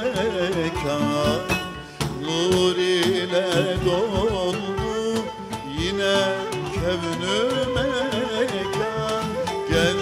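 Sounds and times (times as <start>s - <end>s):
hand drum beats: 0.0s - 10.0s
man singing: 0.0s - 10.0s
plucked oud: 0.0s - 10.0s.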